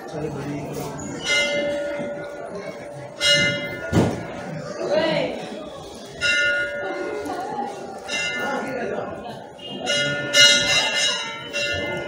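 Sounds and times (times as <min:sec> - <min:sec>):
temple bell ringing: 0:01.0 - 0:12.0.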